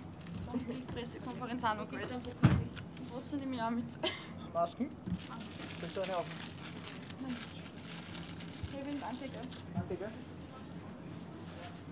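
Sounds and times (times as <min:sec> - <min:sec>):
rustling and handling noises: 0:00.0 - 0:03.4, 0:05.0 - 0:11.9.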